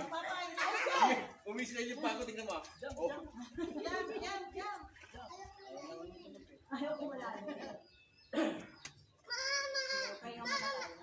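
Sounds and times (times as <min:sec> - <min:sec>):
voices at a swimming pool: 0:00.0 - 0:11.0
young child crying high-pitched: 0:09.3 - 0:11.0.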